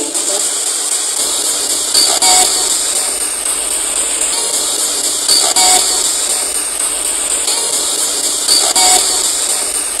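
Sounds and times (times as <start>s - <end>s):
radio static hissing: 0.0s - 10.0s.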